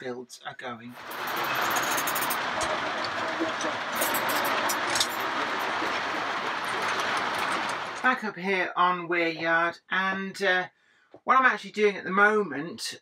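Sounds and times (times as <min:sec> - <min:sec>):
model train wheels rolling hum: 0:01.0 - 0:08.1
wheels clicking over rail joints: 0:01.0 - 0:08.1.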